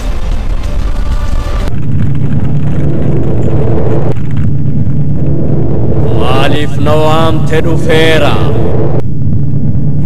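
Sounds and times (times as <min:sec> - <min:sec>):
music: 0:00.0 - 0:01.7
loud steady low rumble: 0:00.0 - 0:10.0.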